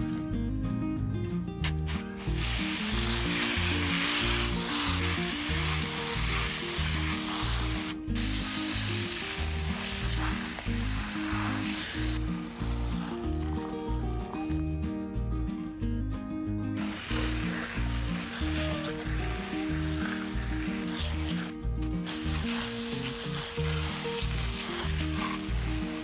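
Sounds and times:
pressure sprayer hissing: 0:01.8 - 0:13.9, 0:16.8 - 0:26.0.

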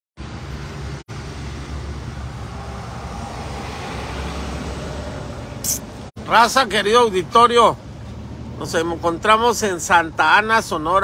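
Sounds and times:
engine and road rumble in car: 0:00.2 - 0:11.0.

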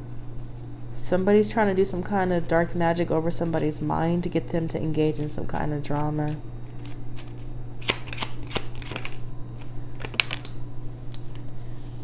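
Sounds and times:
low hum: 0:00.0 - 0:12.0
cards being shuffled: 0:05.1 - 0:11.9
card snaps: 0:06.8 - 0:11.4.

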